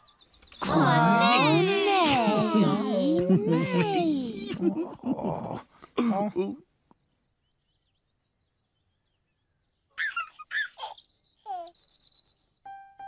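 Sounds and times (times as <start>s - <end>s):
baby giggling: 0.6s - 5.5s, 10.0s - 11.7s.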